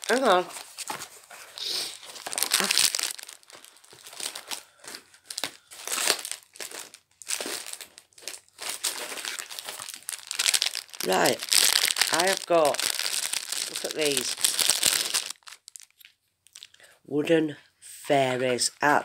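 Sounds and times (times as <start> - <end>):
plastic packaging crinkling: 0.0 - 16.8.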